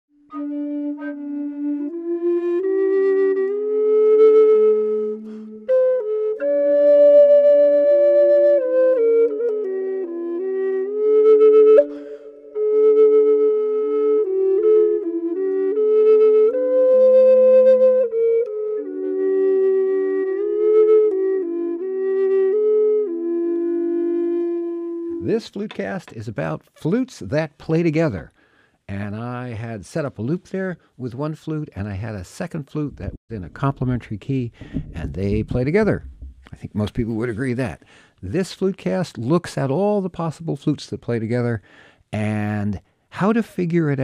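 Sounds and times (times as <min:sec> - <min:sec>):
two flutes playing together: 0:00.1 - 0:25.4.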